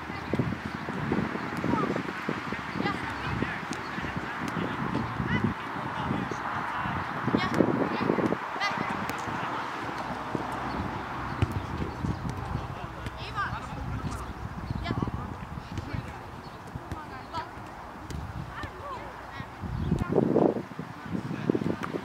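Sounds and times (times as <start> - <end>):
soccer balls being kicked: 0.2 - 20.2, 21.6 - 22.0.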